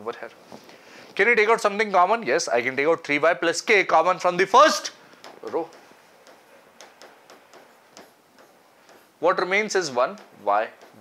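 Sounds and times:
chalk tapping on chalkboard: 5.0s - 11.0s.

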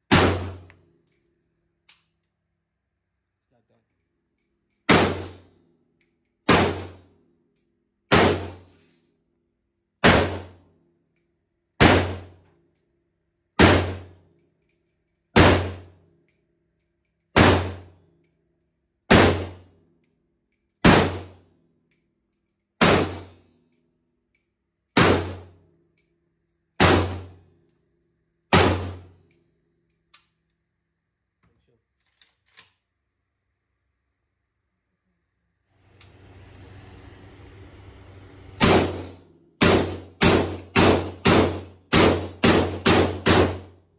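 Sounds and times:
pistol gunshots reverberating indoors: 0.0s - 2.4s, 4.1s - 8.8s, 9.6s - 30.6s, 38.6s - 43.9s.

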